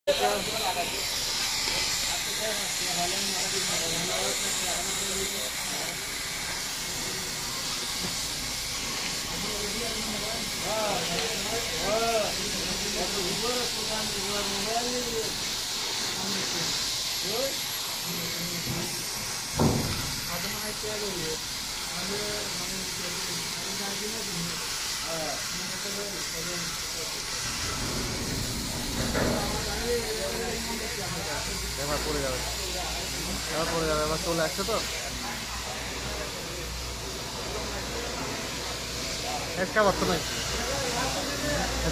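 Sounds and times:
distant people talking: 0.1s - 41.9s
steady hiss: 0.1s - 41.9s
thump: 19.6s - 20.2s.

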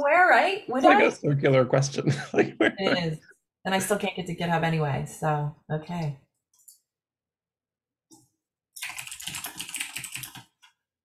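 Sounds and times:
fast typing on keyboard: 8.8s - 10.7s.

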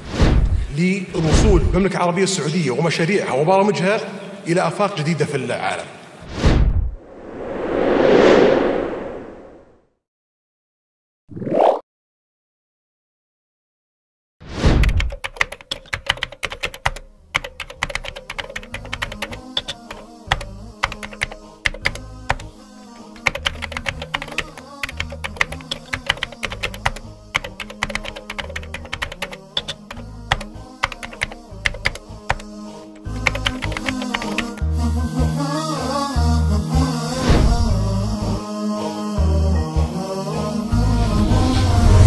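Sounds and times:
keyboard typing clicks: 14.8s - 34.6s.

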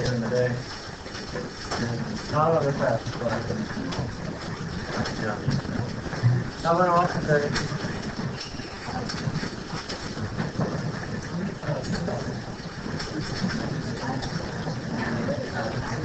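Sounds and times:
steady rustling noise: 0.0s - 16.0s.

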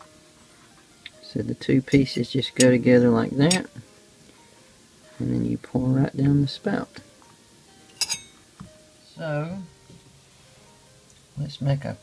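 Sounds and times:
sharp metallic clink: 3.5s - 3.7s, 7.9s - 8.4s.

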